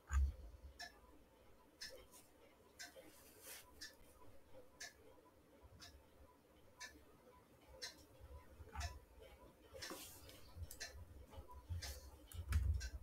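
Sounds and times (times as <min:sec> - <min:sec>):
faint regular ticking: 0:00.0 - 0:13.0
low room noise: 0:00.0 - 0:13.0.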